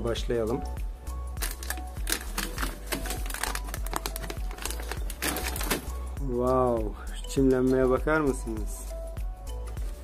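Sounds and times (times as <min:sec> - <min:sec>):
quiet background music: 0:00.0 - 0:10.0
plastic trays clicking and crinkling: 0:01.4 - 0:05.9.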